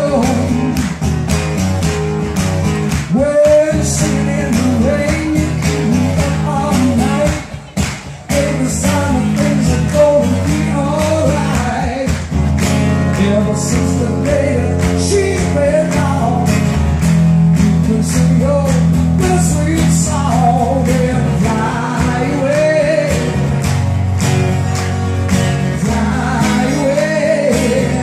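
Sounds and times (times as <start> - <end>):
man singing: 0.0 - 0.9, 3.0 - 12.3, 13.0 - 16.6, 17.6 - 23.4, 25.7 - 28.0
acoustic guitar strumming: 0.0 - 28.0
audience clapping along: 0.0 - 28.0.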